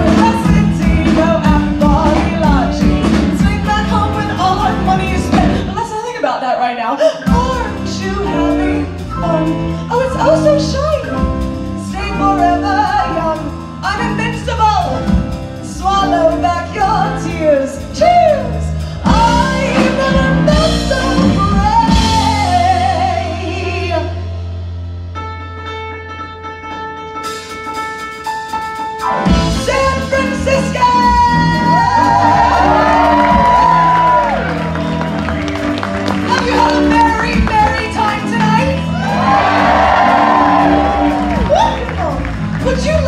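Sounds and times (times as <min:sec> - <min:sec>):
live band music: 0:00.0 - 0:43.0.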